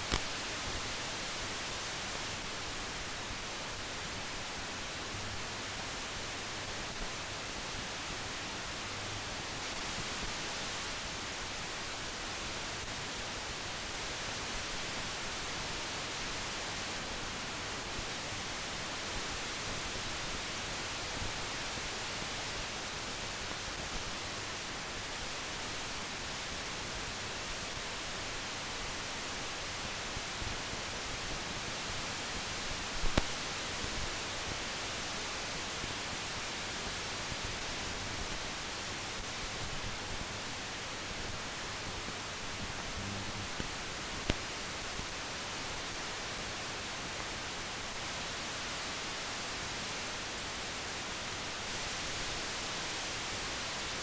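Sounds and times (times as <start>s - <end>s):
film soundtrack hiss: 0.0s - 54.0s
brief click: 0.1s - 0.3s.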